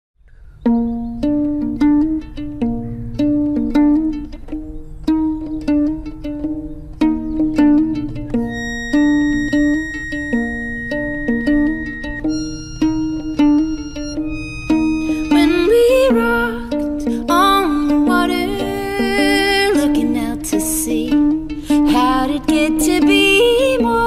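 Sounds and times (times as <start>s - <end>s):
fiddle plucked pizzicato: 0.6s - 24.0s
accordion long high notes: 8.4s - 16.6s.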